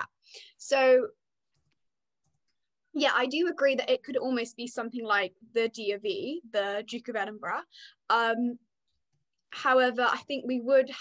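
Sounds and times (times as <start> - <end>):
person speaking over video call: 0.0 - 11.0.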